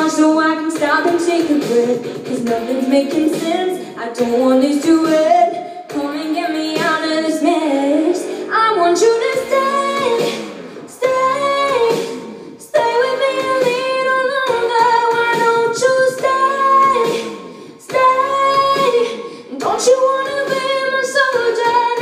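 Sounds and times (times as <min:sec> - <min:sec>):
woman singing pop ballad: 0:00.0 - 0:22.0
singer breathing: 0:03.7 - 0:04.0, 0:05.5 - 0:06.0, 0:08.2 - 0:08.6, 0:10.2 - 0:11.0, 0:11.9 - 0:12.7, 0:17.3 - 0:17.9, 0:19.1 - 0:19.6.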